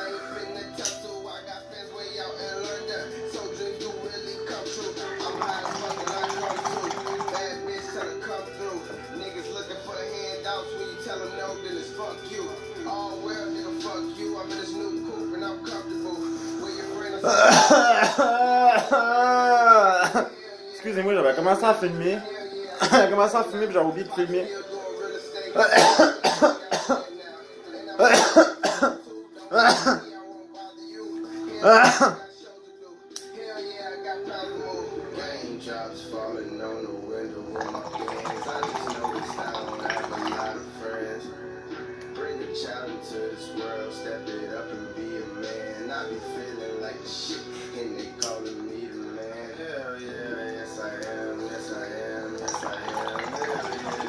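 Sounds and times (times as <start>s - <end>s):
faint rap music: 0.0s - 54.0s
water bubbling in a bong: 5.0s - 8.2s, 37.4s - 40.7s, 52.2s - 54.0s
man coughing: 17.2s - 20.3s, 22.8s - 23.2s, 25.6s - 27.1s, 28.0s - 30.1s, 31.6s - 32.2s.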